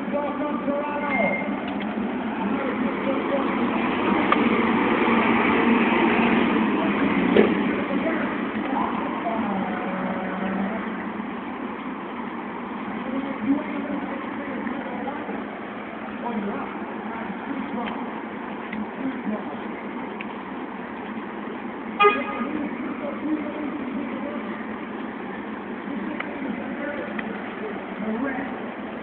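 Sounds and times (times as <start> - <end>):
indistinct voices: 0.0 - 29.0
street and vehicle noise: 0.0 - 29.0.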